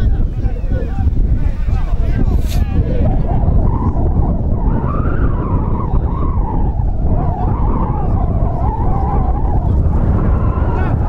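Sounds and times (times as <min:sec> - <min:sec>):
wind buffeting microphone: 0:00.0 - 0:11.0
distant voices shouting: 0:04.8 - 0:11.0.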